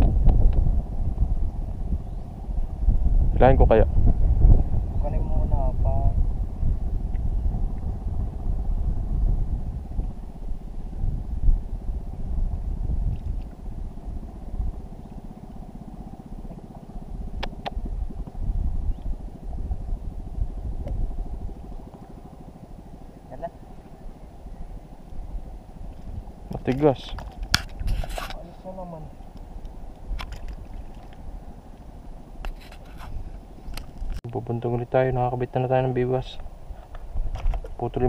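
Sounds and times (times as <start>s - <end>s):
faint steady drone: 0.0s - 38.0s
wind rumbling on microphone: 0.0s - 38.0s.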